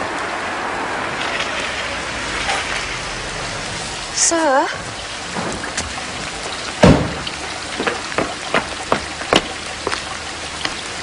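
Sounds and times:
heavy rain falling: 0.0s - 11.0s
sharp drips and splashes: 0.0s - 11.0s.

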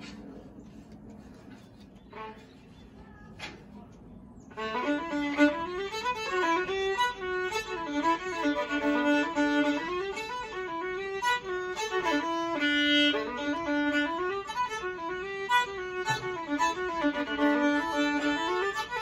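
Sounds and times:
solo fiddle playing: 4.5s - 19.0s.

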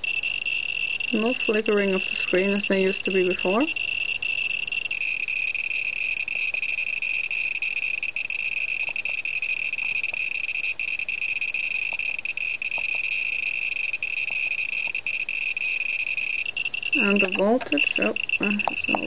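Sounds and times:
geiger counter buzzing tone: 0.0s - 19.0s.

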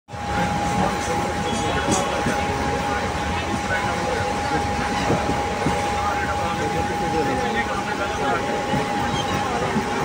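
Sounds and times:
steady train whine: 0.1s - 10.0s
train wheels rumbling on rails: 0.1s - 10.0s.

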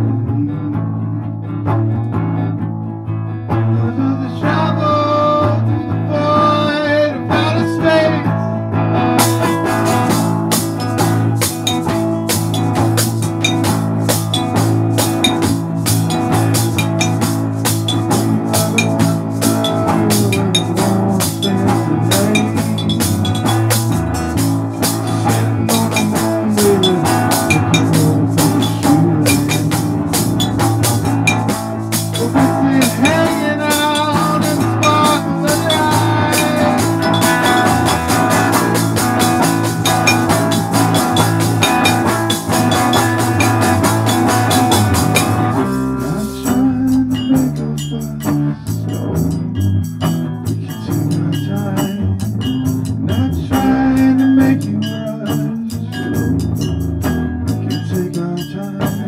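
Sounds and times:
live band playing: 0.0s - 59.0s
drum kit with cymbals: 9.0s - 59.0s.

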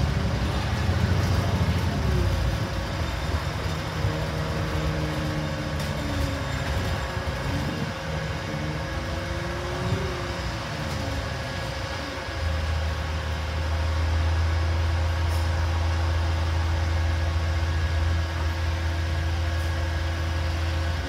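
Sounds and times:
bus engine drone: 0.0s - 21.0s
road noise: 0.0s - 21.0s.

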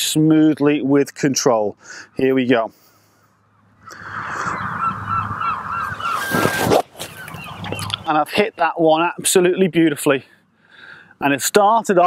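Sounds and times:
low wind rumble: 3.4s - 9.6s
honking bird calls: 3.8s - 8.1s
golf club swish and strike: 6.2s - 7.2s.

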